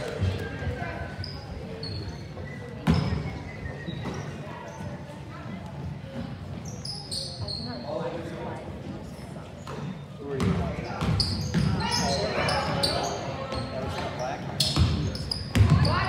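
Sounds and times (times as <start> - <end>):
sneaker squeaks: 0.1 - 5.3, 6.2 - 8.2, 9.0 - 16.0.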